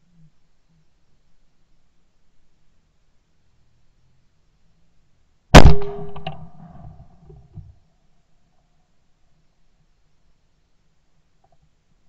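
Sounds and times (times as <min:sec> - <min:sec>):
shotgun shot: 0:05.6 - 0:06.8.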